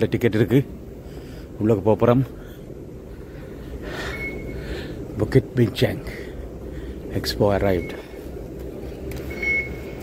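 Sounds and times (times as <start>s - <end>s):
low rumble of station concourse: 0.0s - 10.0s
fare gate beep: 4.0s - 4.6s, 7.7s - 8.2s, 9.2s - 10.0s.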